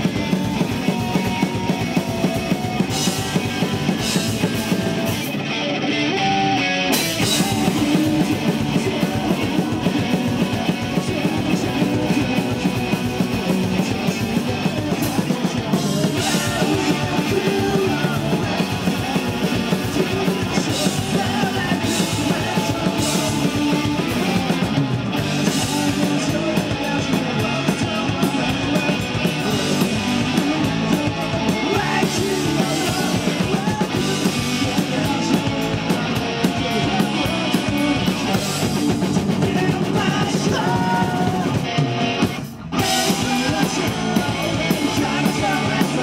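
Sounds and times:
rock band playing live: 0:00.0 - 0:46.0.

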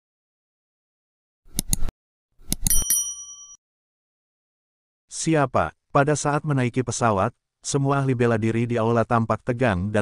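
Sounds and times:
bright bell ding: 0:02.7 - 0:03.6.

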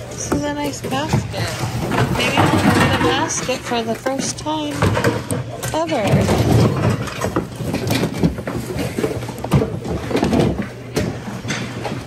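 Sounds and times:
hard parts knocking and clattering: 0:00.0 - 0:12.0.

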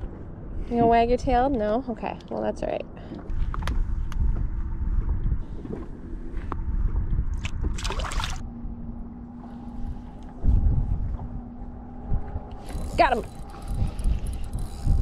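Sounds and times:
wind rumble on microphone: 0:00.0 - 0:15.0
water lapping against boat: 0:07.3 - 0:08.5.

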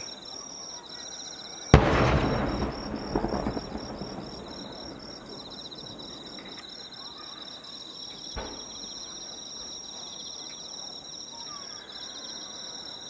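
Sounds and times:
insects chirping: 0:00.0 - 0:13.0
firework boom with echo: 0:01.8 - 0:06.6.

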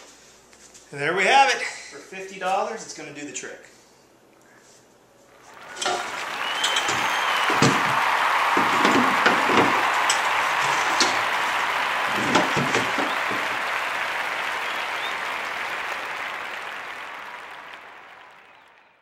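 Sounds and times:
metal frames knocking on wood: 0:08.6 - 0:09.8, 0:12.2 - 0:13.4.

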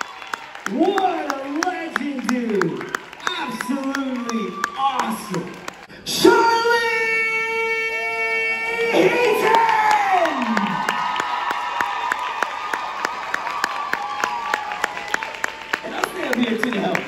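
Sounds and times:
audience cheering and clapping: 0:00.0 - 0:06.6, 0:07.9 - 0:17.0
man shouting into a microphone: 0:00.7 - 0:10.9.

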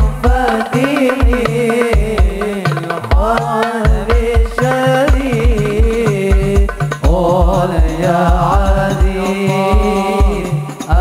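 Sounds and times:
boy singing: 0:00.0 - 0:11.0
frame drums thumping: 0:00.0 - 0:11.0.

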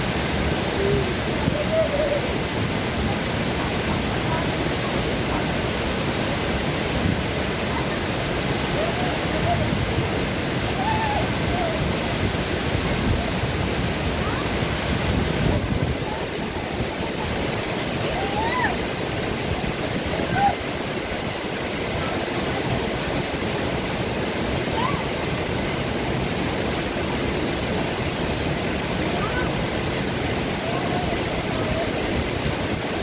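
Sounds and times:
small waterfall splashing into pool: 0:00.0 - 0:33.0.

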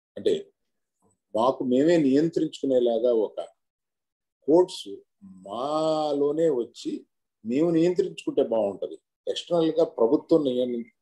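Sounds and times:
man speaking: 0:04.5 - 0:11.0.

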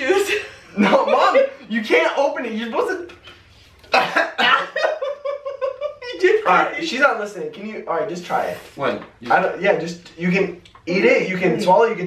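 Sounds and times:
person laughing: 0:03.9 - 0:06.4.

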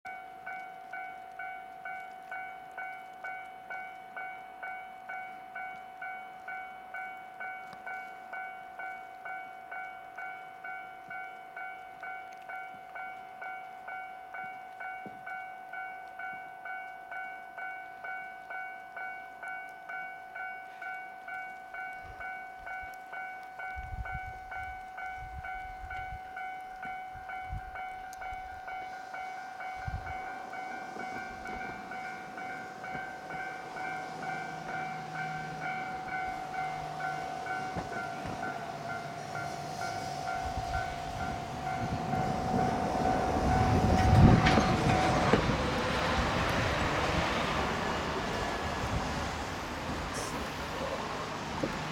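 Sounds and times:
level crossing bell ringing: 0:02.4 - 0:43.6
electric train running: 0:20.3 - 0:51.9
low rumbles: 0:29.7 - 0:50.8.

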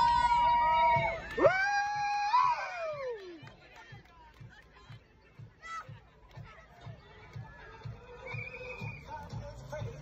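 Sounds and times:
music with steady beat: 0:03.9 - 0:10.0.

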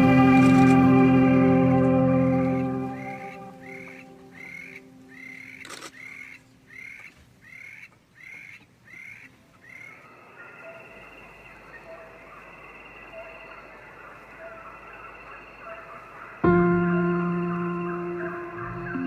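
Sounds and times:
high-pitched natural hum: 0:00.0 - 0:06.8, 0:09.6 - 0:19.0
bird calling: 0:00.0 - 0:19.0.

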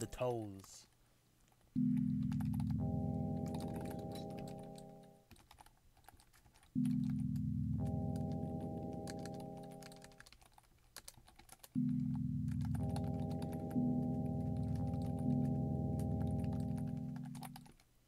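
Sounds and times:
sustained synthesizer chords: 0:01.8 - 0:05.1, 0:06.8 - 0:10.1, 0:11.8 - 0:17.6
computer keyboard keys clicking: 0:01.8 - 0:17.9.

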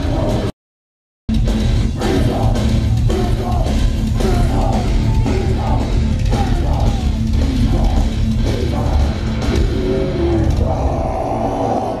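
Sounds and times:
live heavy metal band: 0:00.0 - 0:00.5, 0:01.3 - 0:12.0.

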